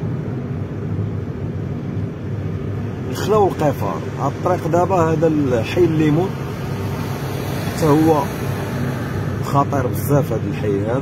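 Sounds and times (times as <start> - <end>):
vehicle engine and tyre rumble: 0.0 - 11.0.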